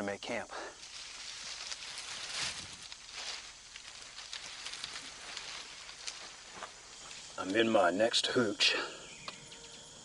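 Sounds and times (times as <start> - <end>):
dry leaves and sticks rustling: 0.1 - 8.6.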